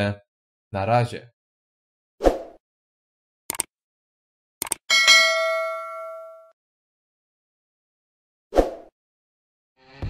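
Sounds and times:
mouse clicks: 4.6s - 4.8s
notification bell ding: 4.9s - 6.5s.

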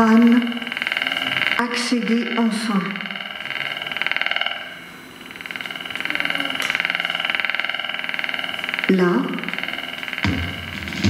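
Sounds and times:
pulsing buzzing guitar drone: 0.0s - 11.0s.

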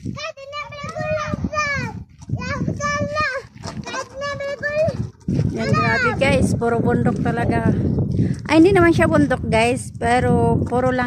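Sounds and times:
young children talking: 0.2s - 6.4s.

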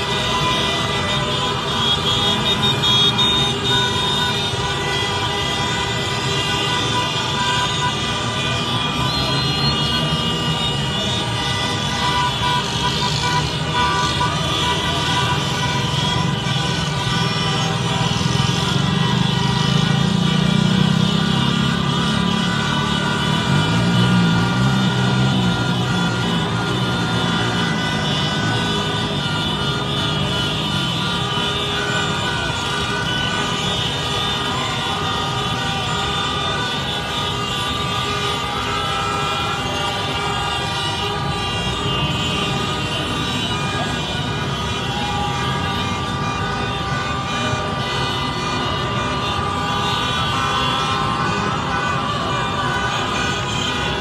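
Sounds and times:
car horns sounding: 0.0s - 54.0s
large crowd noise: 0.0s - 54.0s.

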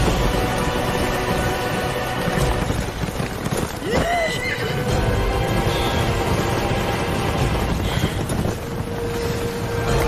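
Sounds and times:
steady rushing background: 0.0s - 10.0s
horse whinnying: 3.8s - 4.8s.

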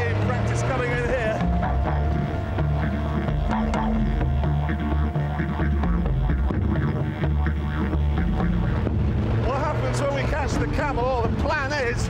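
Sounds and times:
didgeridoo drone: 0.0s - 12.0s
clicking percussion: 1.4s - 7.3s.

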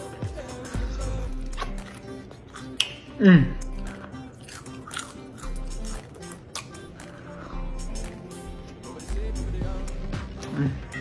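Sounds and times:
crunching and chewing bacon: 0.0s - 8.9s
background music: 0.0s - 11.0s.

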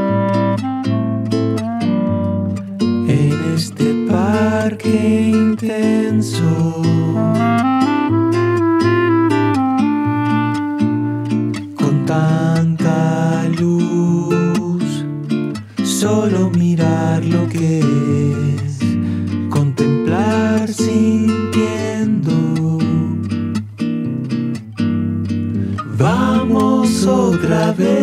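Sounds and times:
acoustic guitar music: 0.0s - 28.0s.

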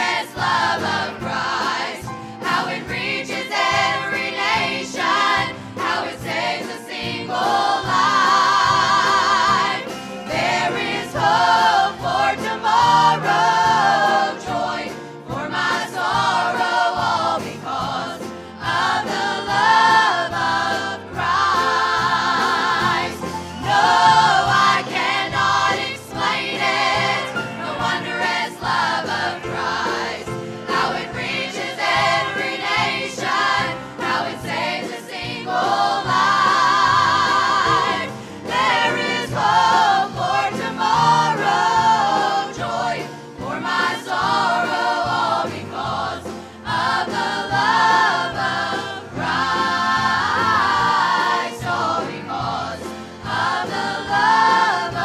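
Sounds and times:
women's chorus singing gospel: 0.0s - 55.0s.

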